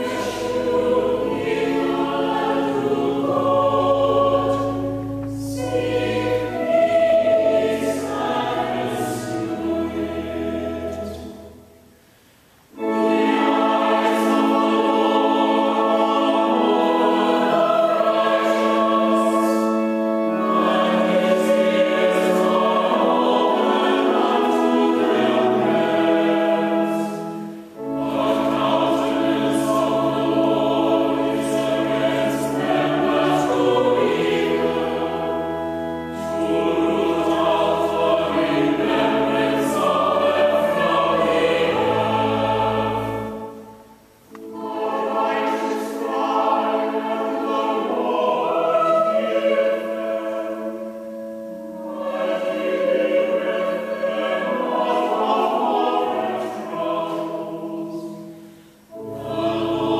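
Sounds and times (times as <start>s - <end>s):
organ: 0.0s - 11.9s, 12.6s - 59.9s
choir chanting a psalm: 0.0s - 12.0s, 12.6s - 59.9s.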